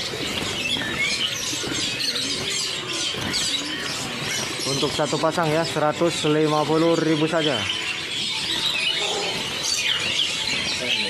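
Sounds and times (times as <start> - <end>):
caged birds chirping: 0.0 - 11.0.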